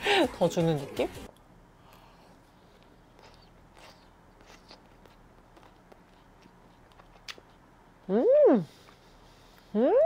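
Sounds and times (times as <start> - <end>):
low room hum: 0.0 - 10.0
faint chewing: 1.9 - 7.7.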